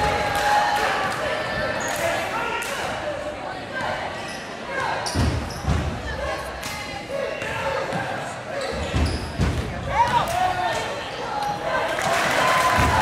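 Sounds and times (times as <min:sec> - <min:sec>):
voices chattering: 0:00.0 - 0:13.0
sneaker squeaks: 0:04.2 - 0:05.9, 0:07.8 - 0:09.6.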